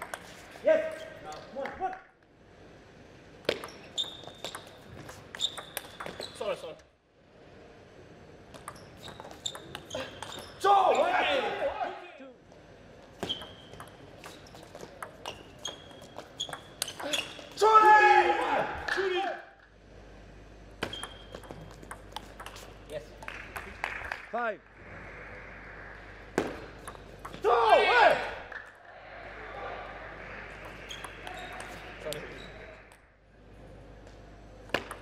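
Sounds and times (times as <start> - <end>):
player shouting: 10.6 - 12.2, 17.6 - 19.5, 27.4 - 28.5
table tennis ball clicking: 21.0 - 22.6.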